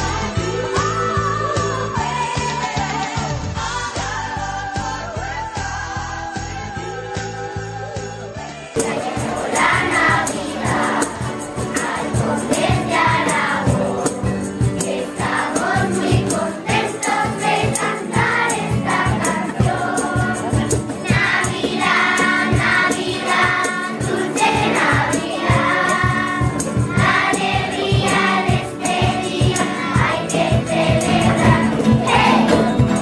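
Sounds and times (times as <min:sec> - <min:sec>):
children's choir singing: 0:00.0 - 0:07.0, 0:08.4 - 0:33.0
steady percussive beat: 0:08.8 - 0:33.0.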